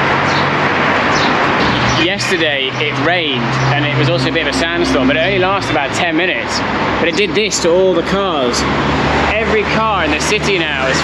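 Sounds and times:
city street hiss: 0:00.0 - 0:11.0
bird chirping: 0:01.1 - 0:05.7.

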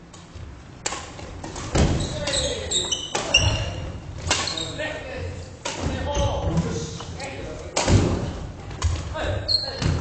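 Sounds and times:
racket hitting shuttlecock: 0:00.8 - 0:02.4
shoe squeaks: 0:02.0 - 0:04.8, 0:09.4 - 0:10.0.

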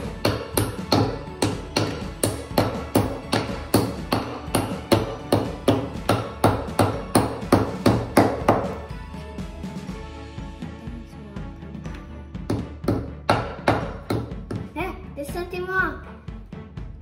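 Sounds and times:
hammer striking nail into wood: 0:00.0 - 0:08.8, 0:12.5 - 0:14.7
background music: 0:00.0 - 0:17.0.

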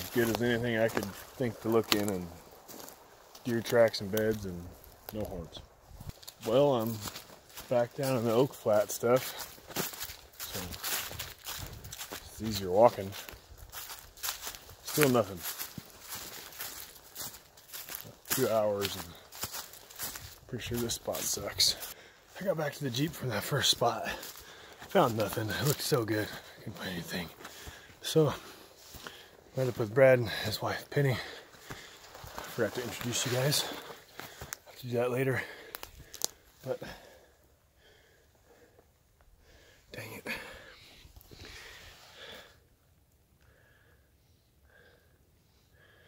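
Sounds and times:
footsteps in dry leaves: 0:00.0 - 0:37.1
person breathing: 0:21.7 - 0:22.4, 0:24.1 - 0:24.9, 0:27.4 - 0:29.5, 0:31.1 - 0:32.1, 0:35.3 - 0:42.7, 0:43.4 - 0:46.0.

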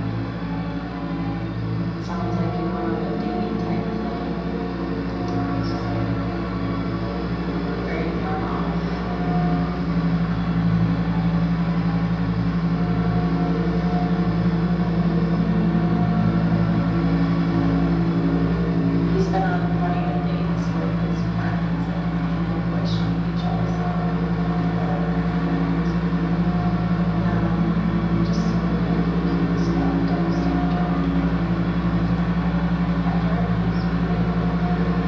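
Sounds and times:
electronic drone: 0:00.0 - 0:35.0.

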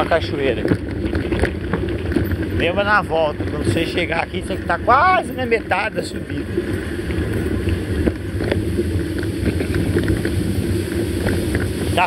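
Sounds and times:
vehicle engine rumble: 0:00.0 - 0:12.0
wind buffeting microphone: 0:00.0 - 0:12.0.

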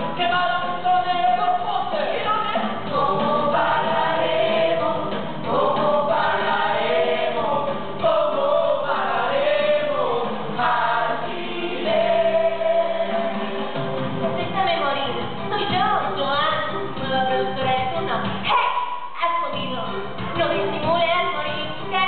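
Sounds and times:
backing music: 0:00.0 - 0:22.0
cast singing together: 0:00.2 - 0:14.0.

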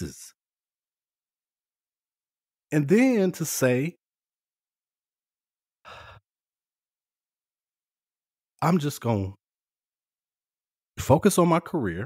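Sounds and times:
man breathing: 0:05.8 - 0:06.3.

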